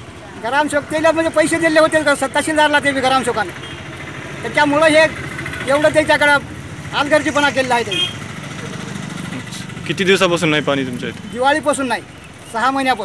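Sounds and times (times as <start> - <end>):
man talking: 4.4 - 8.1, 8.7 - 13.0.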